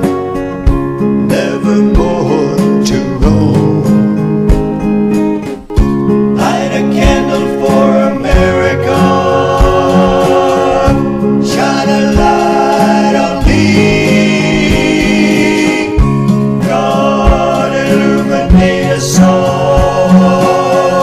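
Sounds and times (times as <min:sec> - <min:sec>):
acoustic guitar: 0:00.0 - 0:21.0
country gospel song: 0:00.0 - 0:21.0
person singing: 0:01.2 - 0:04.2, 0:06.4 - 0:21.0.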